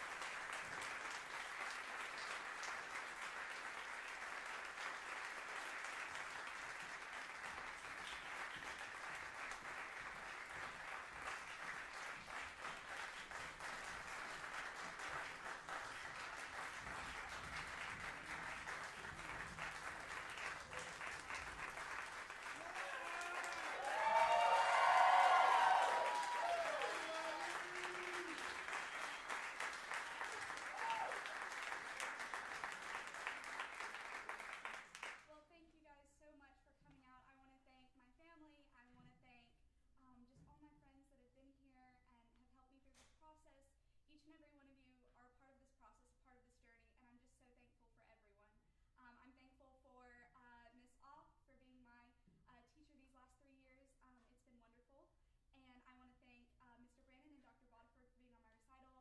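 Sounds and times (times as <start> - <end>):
audience applauding: 0.0 - 35.2
cheering and whooping voices: 22.5 - 31.6.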